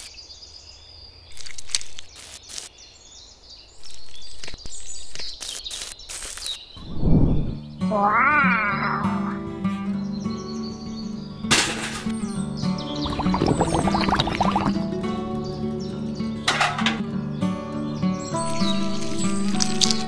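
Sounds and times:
wavering meow-like cry: 7.8s - 9.5s
background music: 7.8s - 20.0s.

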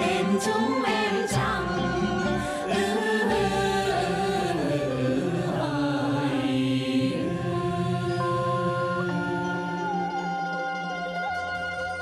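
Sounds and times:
folk singing voices: 0.0s - 11.2s.

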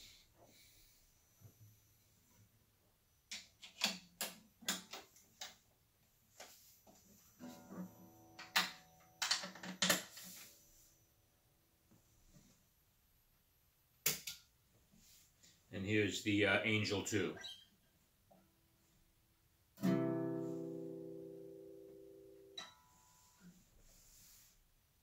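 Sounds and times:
guitar handling clicks and knocks: 3.3s - 5.6s, 7.4s - 10.4s.

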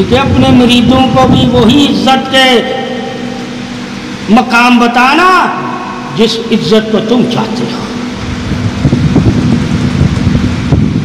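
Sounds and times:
constant low hum: 0.0s - 11.0s
loud low rumbling: 0.0s - 11.0s.

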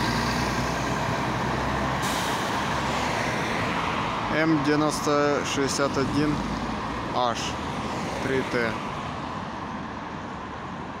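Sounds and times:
traffic rumble from inside vehicle: 0.0s - 11.0s.

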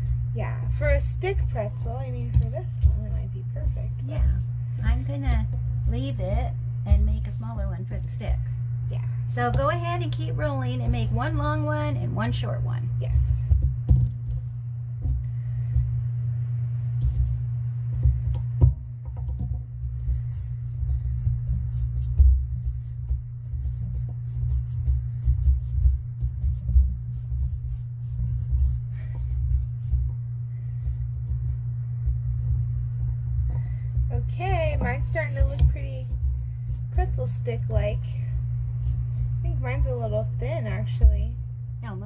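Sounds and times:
hands rolling clay on paper: 0.0s - 8.5s, 9.4s - 12.4s, 13.0s - 41.3s
steady low hum: 0.0s - 42.0s
small knocks on table: 18.4s - 19.6s.

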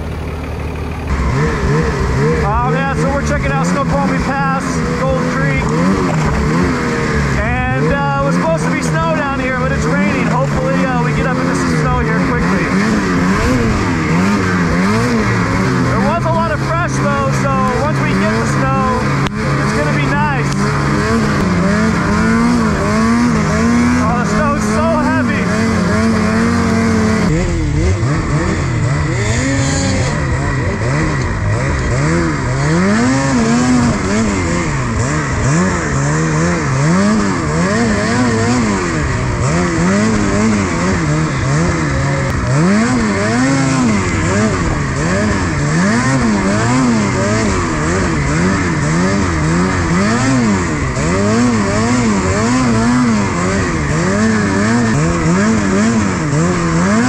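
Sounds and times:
snowmobile engine revving: 0.0s - 57.0s.

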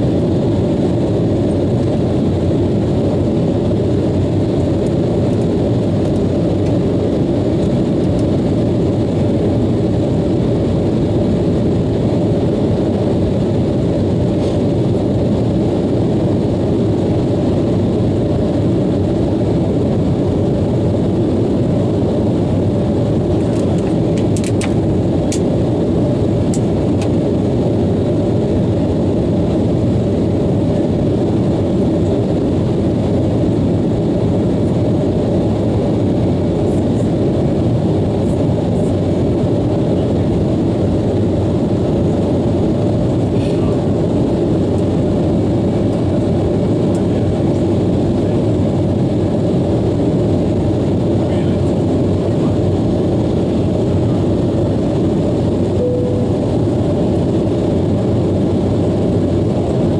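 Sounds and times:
airliner cabin noise in flight: 0.0s - 59.9s.

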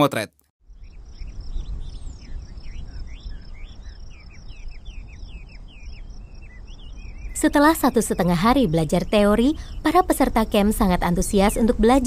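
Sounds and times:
small birds chirping: 0.7s - 12.0s.

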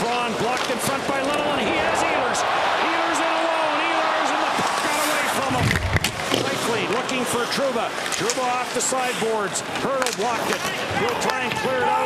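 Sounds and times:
sticks and puck clacking on ice: 0.0s - 1.6s, 4.4s - 12.0s
crowd din: 0.5s - 8.2s.

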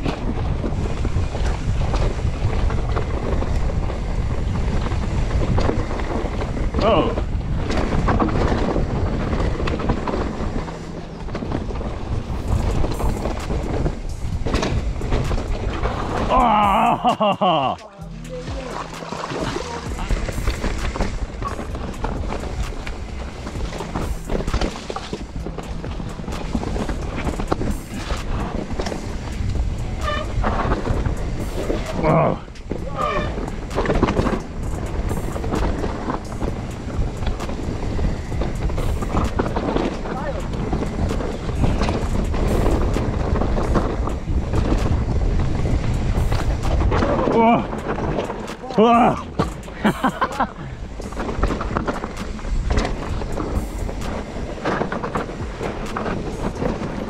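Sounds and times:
bike knocking and rattling: 0.0s - 57.0s
bike tyres on dirt trail: 0.0s - 57.0s
music with low bass line: 0.0s - 57.0s.

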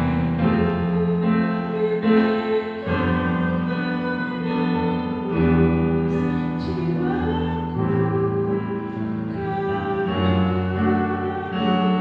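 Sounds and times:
electronic keyboard chords: 0.0s - 12.0s.

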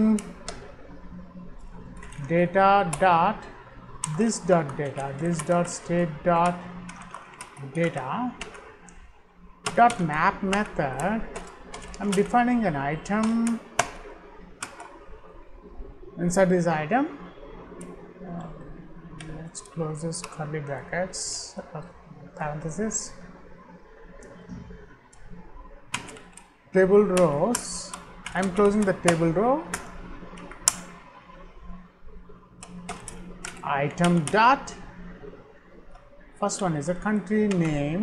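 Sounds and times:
faint hiss and hum: 0.0s - 38.0s
computer keyboard keystrokes: 2.0s - 2.3s, 6.4s - 9.0s, 9.6s - 12.3s, 25.9s - 26.5s, 27.2s - 30.9s, 32.6s - 34.3s.

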